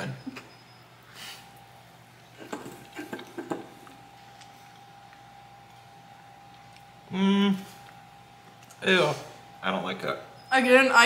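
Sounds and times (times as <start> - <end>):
faint steady hum: 0.0 - 11.0
chewing cookie with mouth smacks: 2.4 - 7.1.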